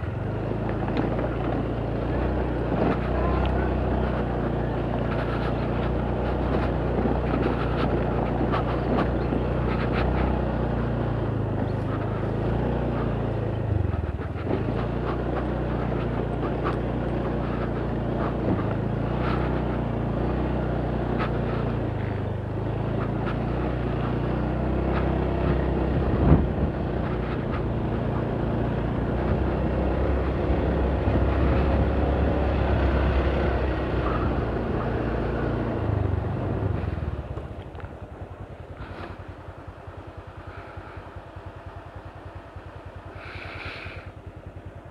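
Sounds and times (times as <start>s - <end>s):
motorcycle engine idling: 0.0s - 44.9s
motorcycle engine revving: 0.0s - 44.9s.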